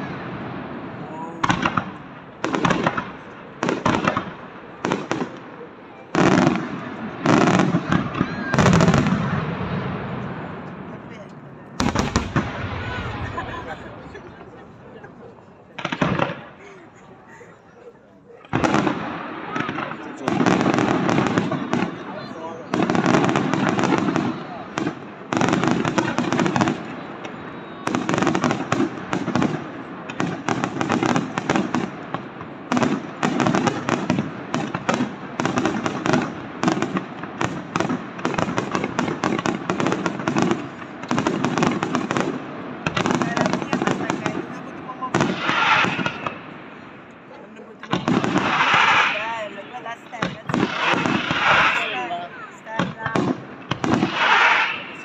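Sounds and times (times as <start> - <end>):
fireworks bursting and crackling: 0.0 - 55.0.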